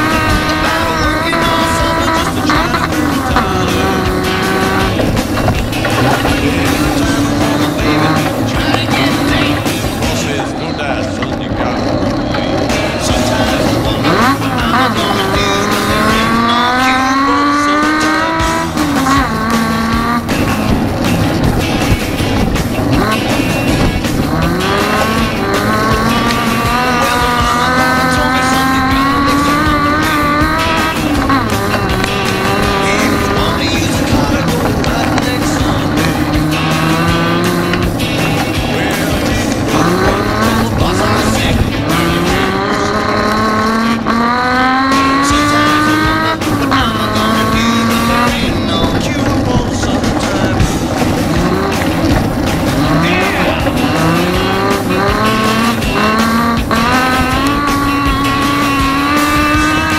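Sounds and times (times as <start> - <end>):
race car engine revving: 0.0 - 59.9.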